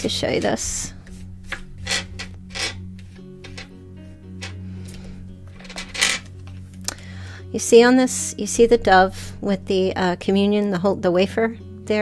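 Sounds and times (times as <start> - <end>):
small objects rubbing and scraping: 0.0 - 6.6
soft background music: 0.0 - 12.0.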